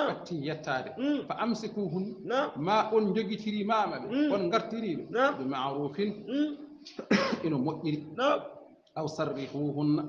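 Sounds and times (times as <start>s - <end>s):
man speaking: 0.0s - 10.0s
man coughing: 6.9s - 7.6s.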